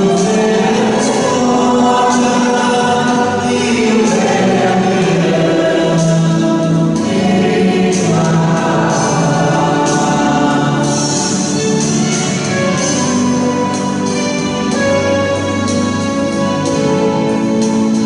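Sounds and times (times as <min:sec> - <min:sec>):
group singing a hymn: 0:00.0 - 0:12.3.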